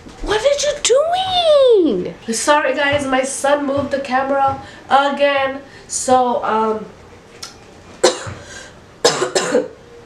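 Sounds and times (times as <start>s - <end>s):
woman coughing: 8.0s - 8.4s, 9.0s - 9.8s.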